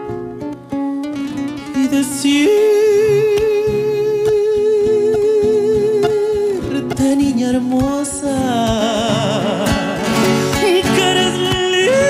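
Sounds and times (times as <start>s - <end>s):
plucked nylon-string guitars: 0.0s - 12.0s.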